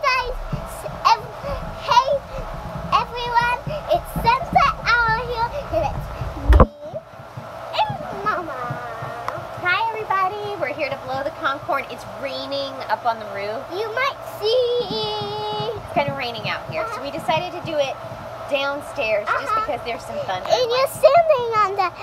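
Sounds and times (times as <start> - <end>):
girl chattering: 0.0 - 7.0, 7.8 - 9.4, 13.7 - 17.8, 19.0 - 22.0.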